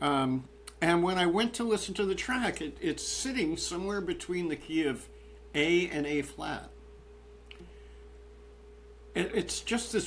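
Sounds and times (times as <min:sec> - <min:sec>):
low hum: 0:00.0 - 0:10.0
faint click: 0:07.4 - 0:07.7.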